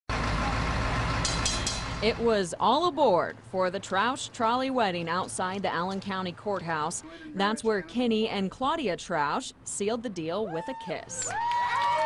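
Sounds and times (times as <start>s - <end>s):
bus engine idling: 0.1s - 9.7s.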